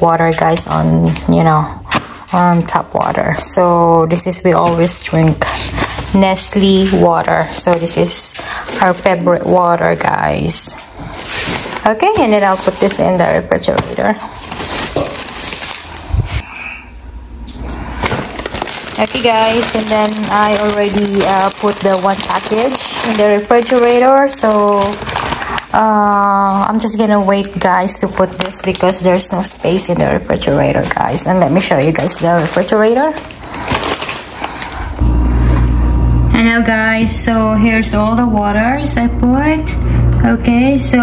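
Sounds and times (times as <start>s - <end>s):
plastic shrink wrap crinkling: 4.2s - 16.2s, 17.5s - 35.0s.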